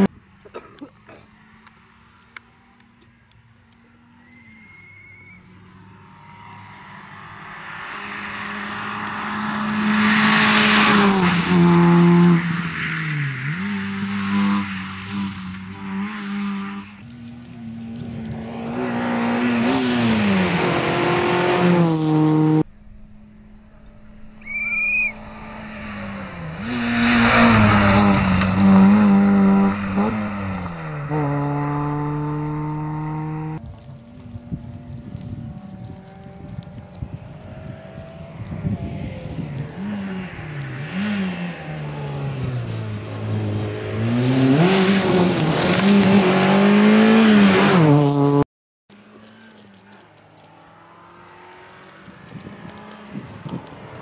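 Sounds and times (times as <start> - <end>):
rally car engine revving: 5.9 - 48.4.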